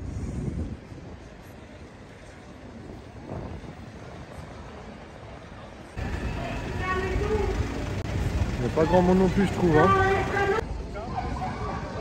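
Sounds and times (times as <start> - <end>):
low rumble of city traffic: 0.0 - 12.0.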